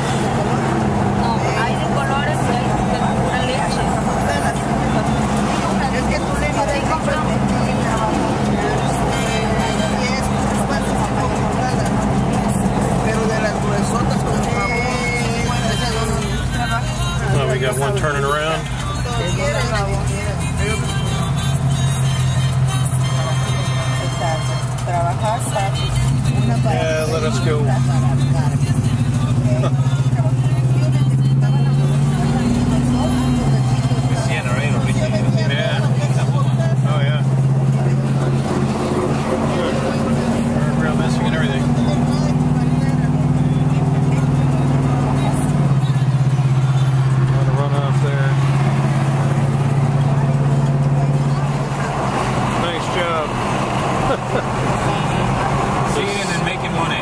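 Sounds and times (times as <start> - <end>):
car engine droning: 0.0 - 57.0
faint voices: 0.0 - 57.0.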